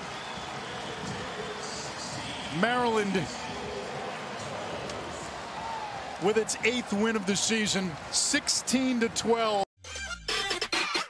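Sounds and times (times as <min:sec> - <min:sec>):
stadium crowd hubbub: 0:00.0 - 0:09.6.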